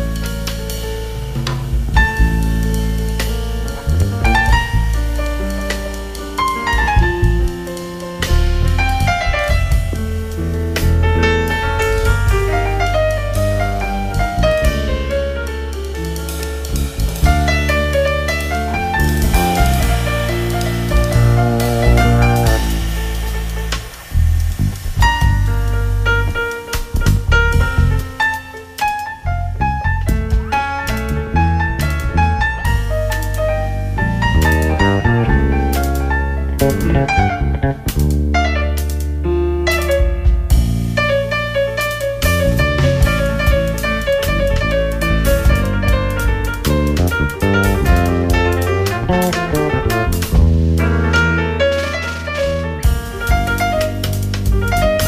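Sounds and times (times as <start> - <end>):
electric bass: 0.0 - 55.0
jazz band playing: 0.0 - 55.0
piano chords: 0.0 - 55.0
plucked melodic notes: 34.0 - 38.0.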